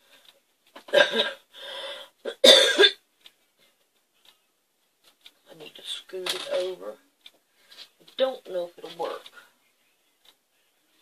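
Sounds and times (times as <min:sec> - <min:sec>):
cough-like sound: 0:00.9 - 0:01.4, 0:02.3 - 0:03.0.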